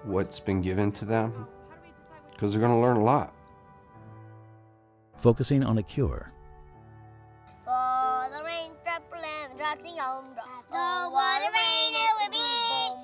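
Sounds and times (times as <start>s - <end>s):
instrumental music: 0.0s - 13.0s
child singing: 7.7s - 13.0s.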